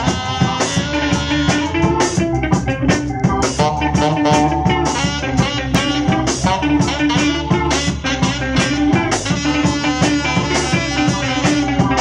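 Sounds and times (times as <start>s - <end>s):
saxophones holding long notes: 0.0s - 2.1s, 3.5s - 12.0s
drum kit beat: 0.0s - 12.0s.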